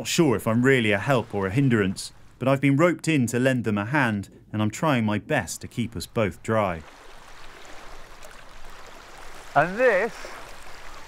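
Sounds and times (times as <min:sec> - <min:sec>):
seawater lapping against rocks: 0:00.0 - 0:02.4, 0:05.8 - 0:11.0.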